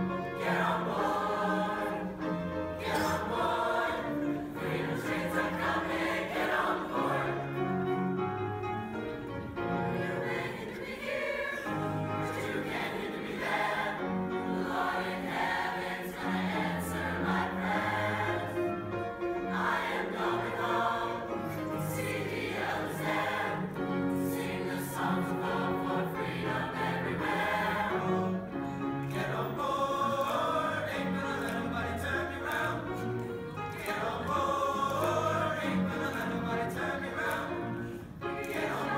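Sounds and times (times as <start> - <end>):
choir singing: 0.0 - 38.9.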